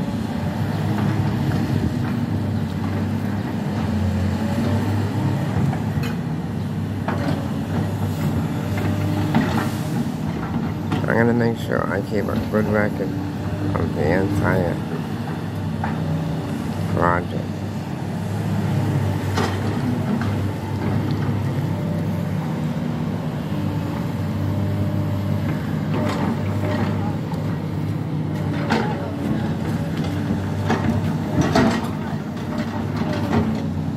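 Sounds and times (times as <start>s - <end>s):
excavator diesel engine running: 0.0s - 33.9s.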